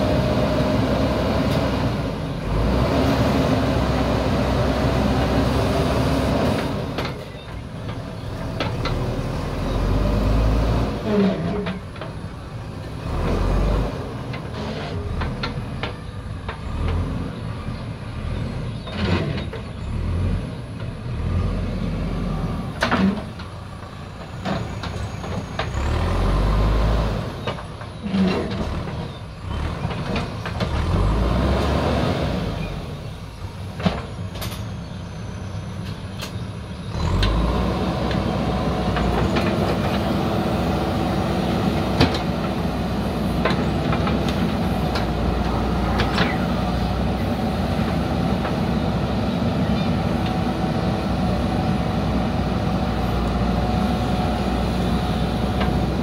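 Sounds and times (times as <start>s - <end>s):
diesel engine under load: 0.0s - 56.0s.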